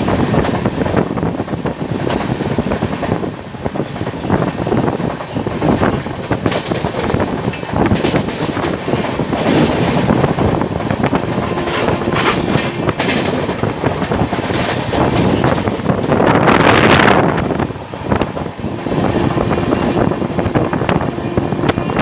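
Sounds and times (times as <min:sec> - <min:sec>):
train wheels clattering on rails: 0:00.0 - 0:22.0
wind rushing past: 0:00.0 - 0:22.0.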